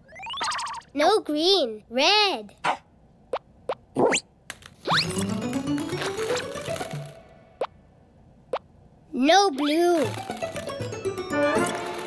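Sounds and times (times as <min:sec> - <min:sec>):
cartoon plop sound effects: 0:00.1 - 0:00.9
background music: 0:04.9 - 0:07.7, 0:09.8 - 0:12.0.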